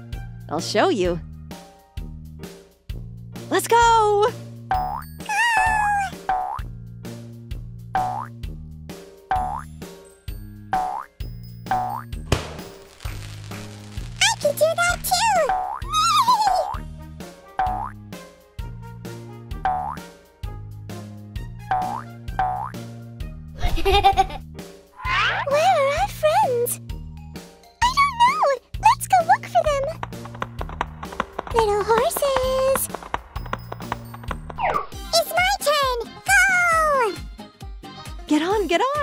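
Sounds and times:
bouncy plucked children's music: 0:14.2 - 0:18.2, 0:25.4 - 0:39.0.

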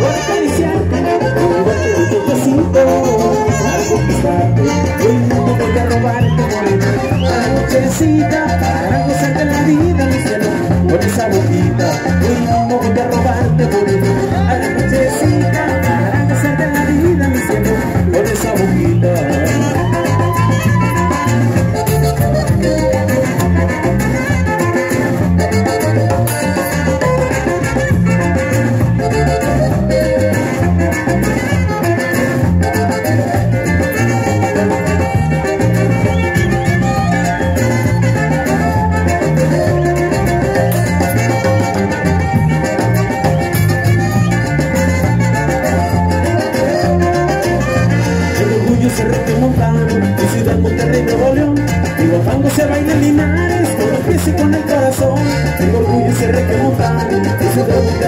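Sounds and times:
accordion: 0:00.0 - 0:58.0
live band playing dance music: 0:00.0 - 0:58.0
saxophone: 0:00.0 - 0:58.0.

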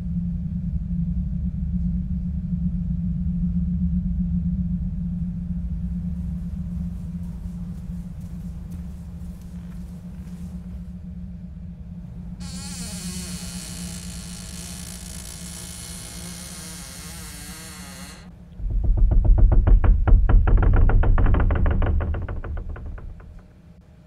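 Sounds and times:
low rumble with rapid flutter: 0:00.0 - 0:24.0
high hissing drone: 0:12.2 - 0:18.3.

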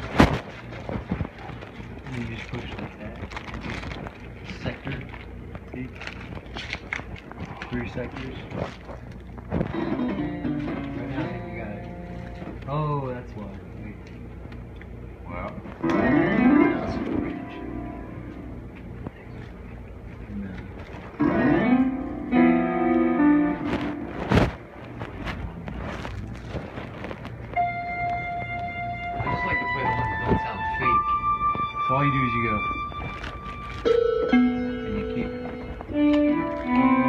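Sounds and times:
held keyboard tones: 0:27.4 - 0:37.0.

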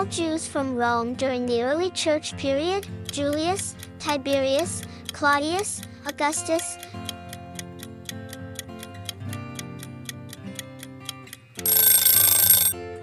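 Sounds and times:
clock-like ticking: 0:02.7 - 0:12.8
loud alarm ring: 0:11.7 - 0:12.8.

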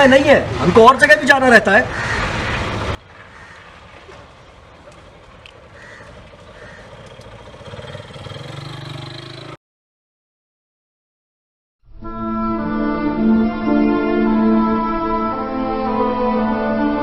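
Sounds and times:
quiet street ambience: 0:00.0 - 0:09.6
vehicle engine hum: 0:00.1 - 0:09.6.

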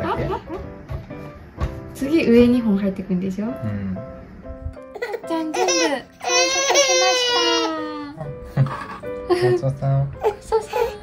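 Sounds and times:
infant crying: 0:05.0 - 0:08.3, 0:10.2 - 0:11.0.

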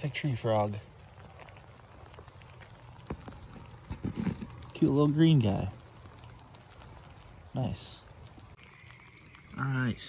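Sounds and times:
light rain hiss: 0:00.0 - 0:10.0
raindrops ticking: 0:00.0 - 0:10.0.

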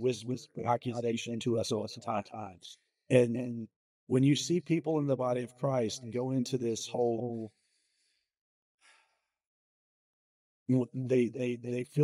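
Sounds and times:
man breathing: 0:07.5 - 0:09.3.

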